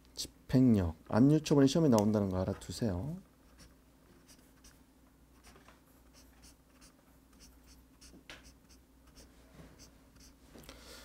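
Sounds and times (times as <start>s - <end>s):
highlighter scratching on paper: 3.4s - 10.4s.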